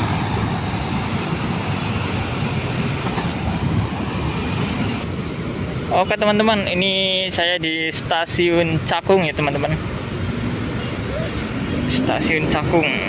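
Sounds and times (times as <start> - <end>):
train wheels rumbling on rails: 0.0 - 5.8.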